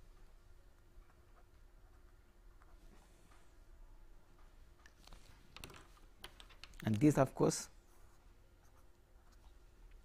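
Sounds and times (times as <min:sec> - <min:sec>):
pen tapping and scratching: 0:04.4 - 0:07.2
person speaking: 0:06.7 - 0:07.9.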